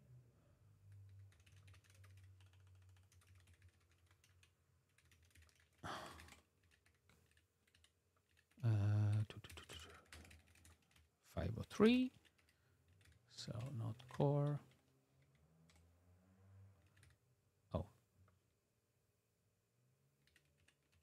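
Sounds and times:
computer keyboard typing: 0.9 - 15.8, 16.8 - 17.2, 20.2 - 21.0.

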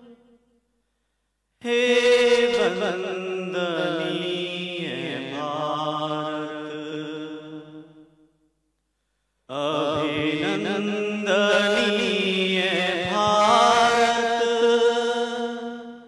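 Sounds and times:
man chanting into a microphone: 1.6 - 7.9, 9.5 - 16.0.

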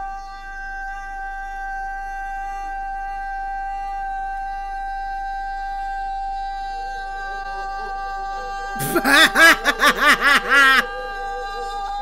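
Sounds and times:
young man singing long high note: 3.7 - 12.0.

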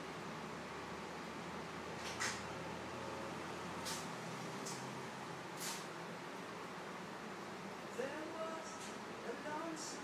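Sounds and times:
steady hiss: 3.4 - 10.0.

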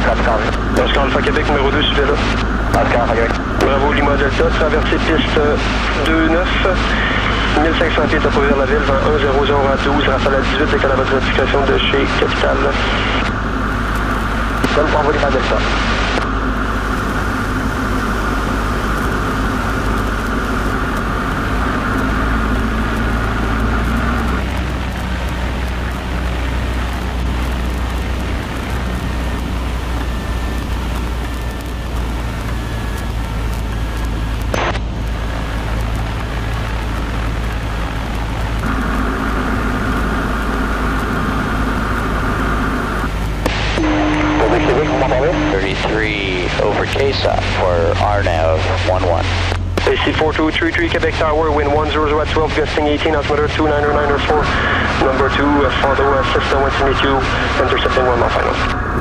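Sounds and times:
aircraft engine and propeller droning: 0.0 - 59.0
steady high tone: 38.6 - 59.0
warbling voice-like sounds: 43.6 - 59.0.

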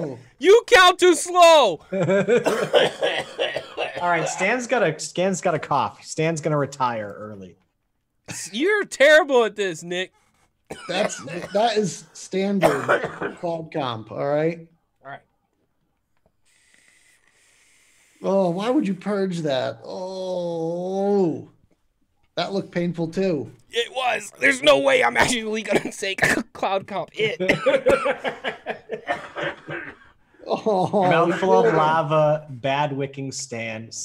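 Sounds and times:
laughter: 1.8 - 4.4, 27.2 - 29.6, 30.4 - 31.6
man coughing: 2.2 - 4.6, 10.7 - 12.0, 12.6 - 13.6, 25.2 - 30.2.

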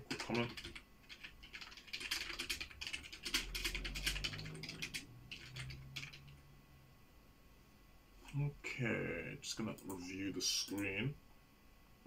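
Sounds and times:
typing on a computer keyboard: 0.0 - 6.3.

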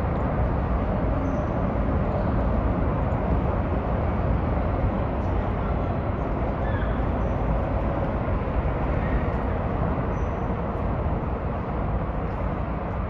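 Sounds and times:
highway traffic rumble: 0.0 - 13.0.

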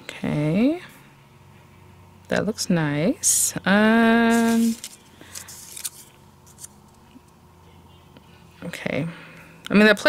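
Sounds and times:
paper rustling: 4.3 - 6.8
light clicks of paper pieces: 4.4 - 6.7.

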